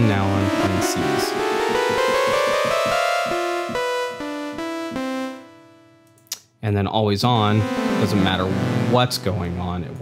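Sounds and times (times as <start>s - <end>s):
buzzing saw-wave synth notes: 0.0s - 5.6s, 7.6s - 10.0s.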